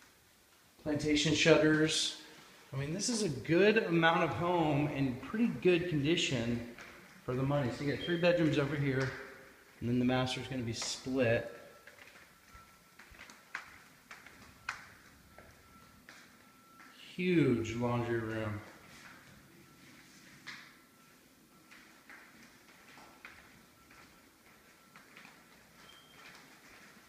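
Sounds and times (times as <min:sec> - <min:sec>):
faint steady high tone: 0:00.8 - 0:27.0
footsteps on hardwood floor: 0:06.6 - 0:09.9, 0:10.8 - 0:16.9, 0:21.6 - 0:27.0.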